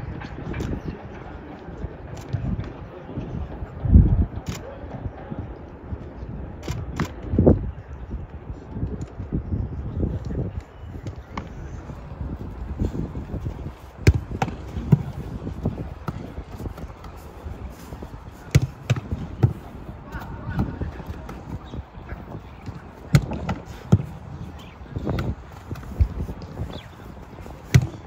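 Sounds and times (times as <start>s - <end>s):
outdoor background noise: 0.0s - 28.0s
voices: 9.9s - 28.0s
football kicks and catches: 14.0s - 17.2s, 18.5s - 19.6s, 22.6s - 24.2s, 27.6s - 28.0s.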